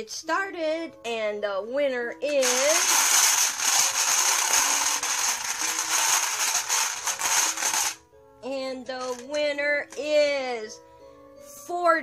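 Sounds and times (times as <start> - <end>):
stones rattling in a bowl: 2.3 - 8.0.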